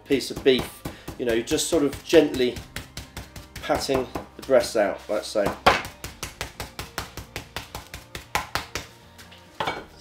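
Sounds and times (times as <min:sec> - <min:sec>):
hand patting meat on board: 0:00.0 - 0:09.0.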